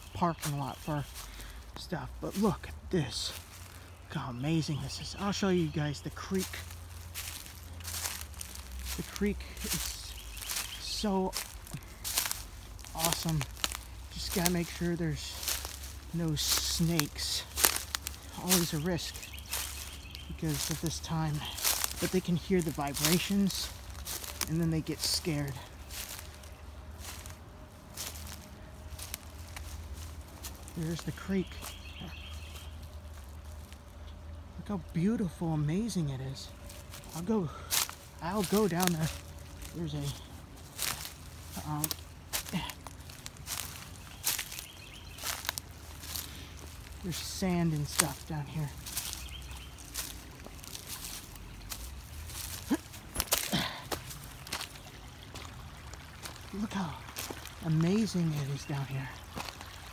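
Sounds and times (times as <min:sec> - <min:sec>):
creek trickling over stones: 0:00.0 - 0:59.9
footsteps through grass and leaves: 0:00.0 - 0:59.9.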